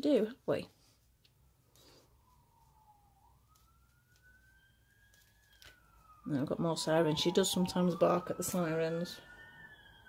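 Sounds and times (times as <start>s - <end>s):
emergency vehicle siren wailing: 1.6s - 10.0s.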